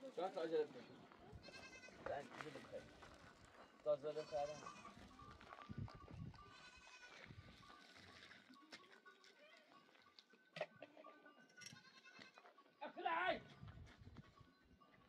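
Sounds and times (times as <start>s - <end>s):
goats bleating: 1.4s - 2.0s, 4.2s - 5.0s, 6.4s - 7.3s, 11.8s - 12.5s.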